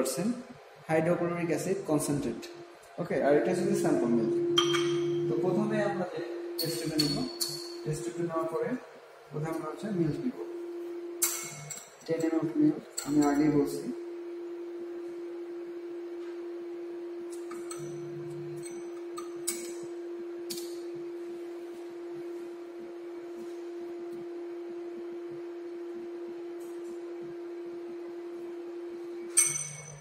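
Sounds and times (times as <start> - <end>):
steady hum-like tone: 0.0 - 30.0
glassware clicks and clinks: 4.6 - 5.3, 6.6 - 7.8, 11.2 - 12.4, 13.0 - 13.4, 17.4 - 18.0, 18.6 - 19.8, 29.3 - 30.0.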